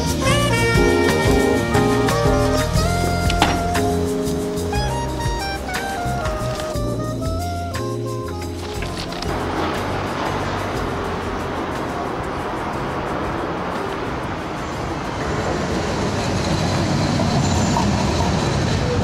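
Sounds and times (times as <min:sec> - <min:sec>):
moving vehicle rumbling: 0:00.0 - 0:19.0.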